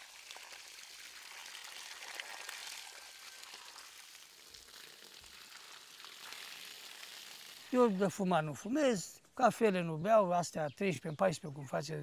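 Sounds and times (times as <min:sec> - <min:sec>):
water trickling onto soil: 0:00.0 - 0:08.6.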